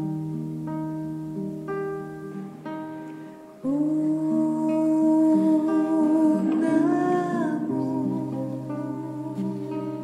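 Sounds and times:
long held melodic notes: 0.0s - 10.0s
soft plucked notes: 0.0s - 10.0s.

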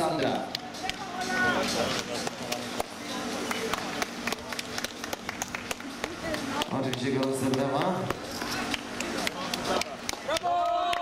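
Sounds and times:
scattered clapping: 0.4s - 11.0s
people talking: 5.8s - 11.0s.

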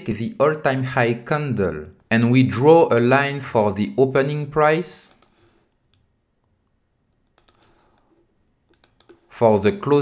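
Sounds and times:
computer mouse clicks: 5.0s - 9.3s.

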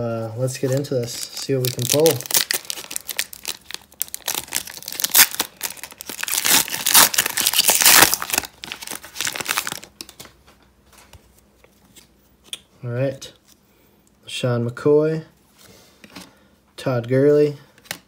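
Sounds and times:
foil wrapper crinkling and tearing: 0.6s - 10.2s.

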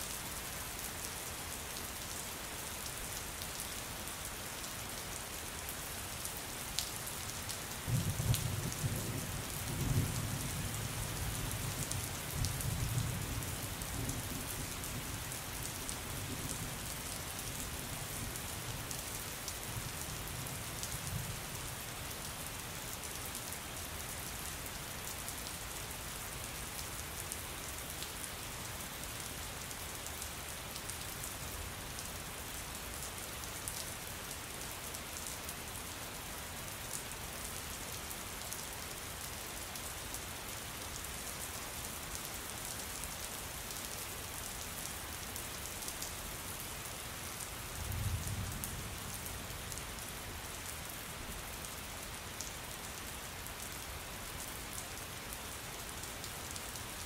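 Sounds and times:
steady rain: 0.0s - 57.0s.

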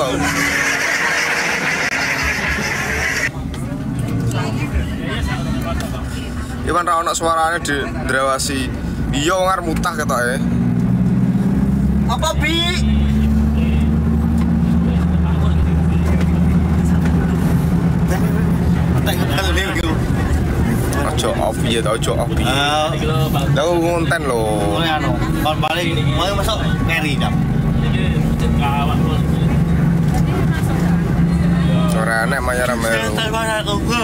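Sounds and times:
bus rumbling: 0.0s - 34.0s.

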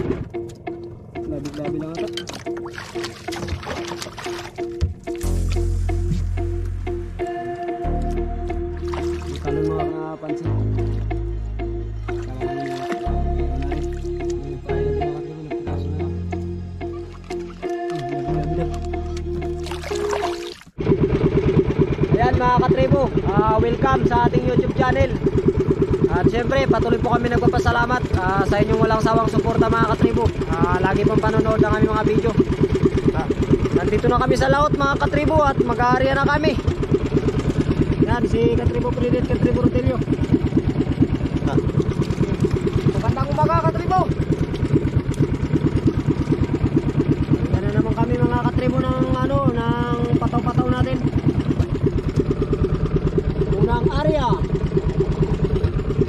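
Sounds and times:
background music: 0.0s - 20.4s
boat engine chugging: 0.0s - 56.0s.

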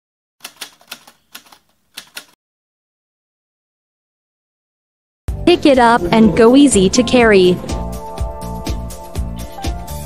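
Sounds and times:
sharp clicks: 0.4s - 2.4s.

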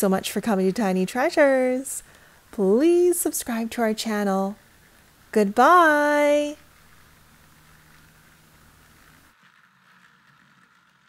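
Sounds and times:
toy train motor running: 0.0s - 11.0s.

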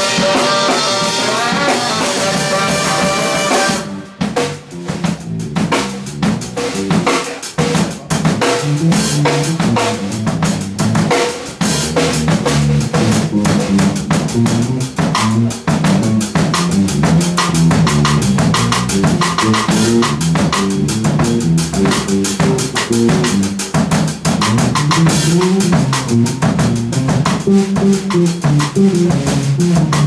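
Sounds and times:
drum kit groove: 0.0s - 30.0s
funk jazz band jamming: 0.0s - 30.0s.

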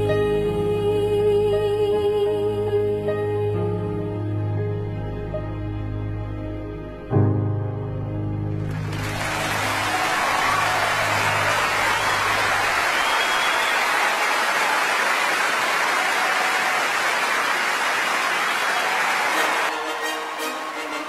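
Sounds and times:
audience applauding: 8.6s - 21.0s.

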